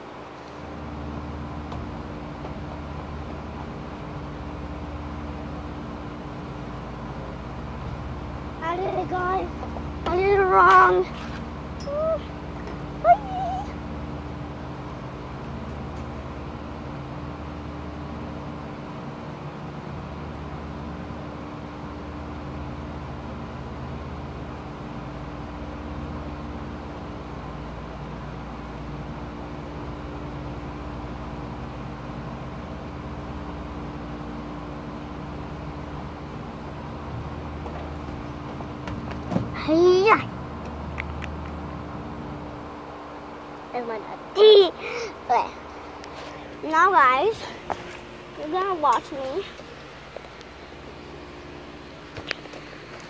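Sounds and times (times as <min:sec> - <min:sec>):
low background hum: 0:00.0 - 0:53.0
child's vocal squeak: 0:11.8 - 0:12.3, 0:13.0 - 0:13.8.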